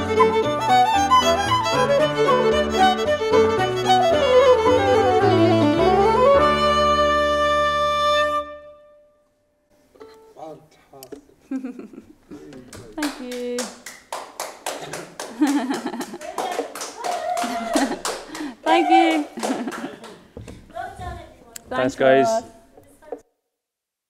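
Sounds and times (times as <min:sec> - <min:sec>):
fiddle flute and keyboard chord: 0:00.0 - 0:09.0
people talking and laughing: 0:11.4 - 0:13.3, 0:14.8 - 0:21.4
people clapping: 0:12.4 - 0:21.2.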